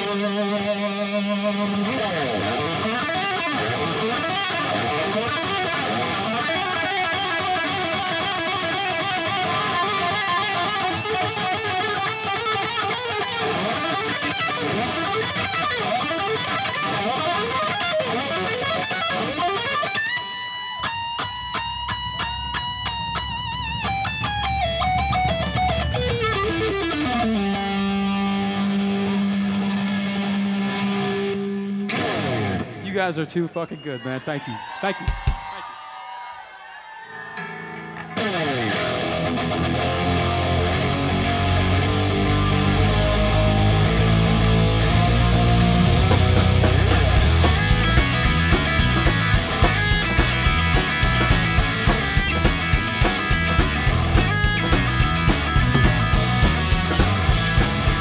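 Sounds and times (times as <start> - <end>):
distorted electric guitar: 0.0 - 32.8, 37.4 - 58.0
live rock band playing: 0.0 - 32.8, 37.3 - 58.0.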